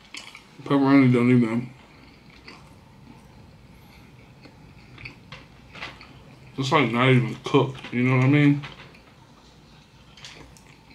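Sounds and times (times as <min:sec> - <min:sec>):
person chewing: 0:00.0 - 0:00.7, 0:01.7 - 0:06.6, 0:09.8 - 0:10.9.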